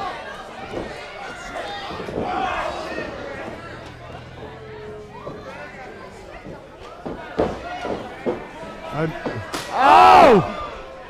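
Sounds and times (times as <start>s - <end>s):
crowd shouting and calling out: 0.0s - 11.0s.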